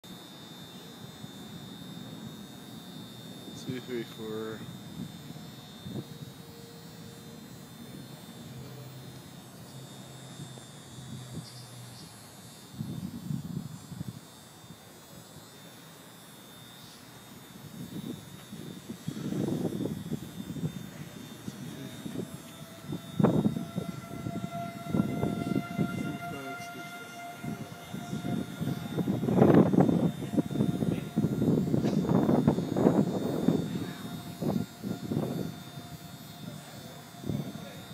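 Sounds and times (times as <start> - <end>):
warning siren wailing: 0.1 - 37.9
rough wind gusts: 27.4 - 35.6.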